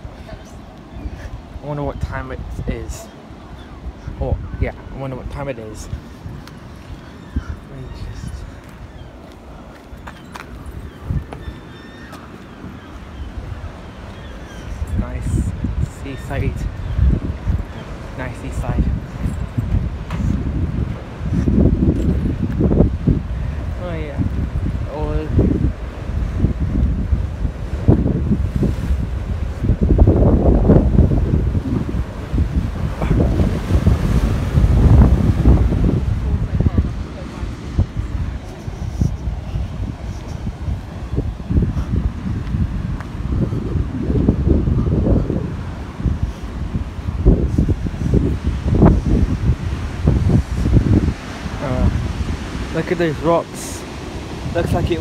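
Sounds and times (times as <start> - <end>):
sea surf against stone wall: 0.0 - 55.0
wind buffeting microphone: 0.0 - 55.0.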